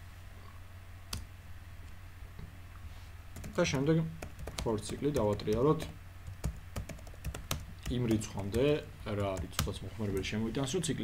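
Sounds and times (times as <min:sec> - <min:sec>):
low electrical hum: 0:00.0 - 0:11.0
keyboard keystroke: 0:04.2 - 0:10.3.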